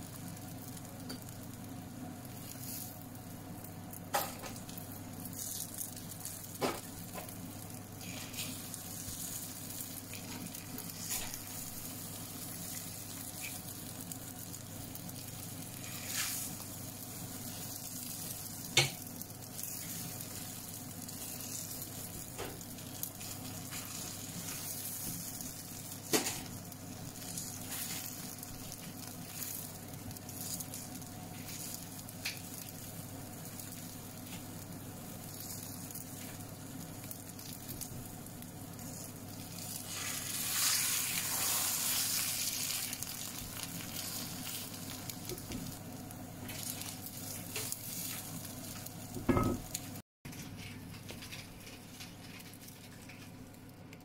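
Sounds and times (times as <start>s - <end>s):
egg sizzling in a pan: 0.0s - 50.0s, 50.7s - 54.0s.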